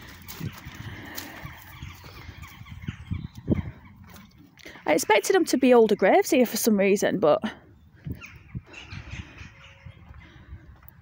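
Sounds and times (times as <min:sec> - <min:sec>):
faint bird calls: 0:07.8 - 0:10.6.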